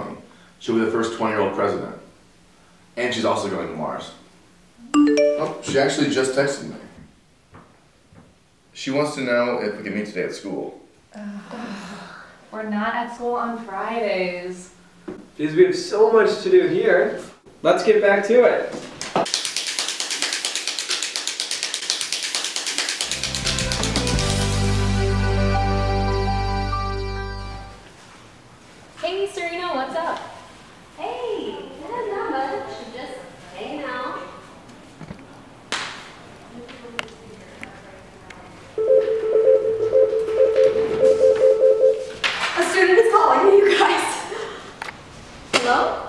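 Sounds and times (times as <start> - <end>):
mobile phone ringtone: 5.0 - 5.7, 38.8 - 42.1.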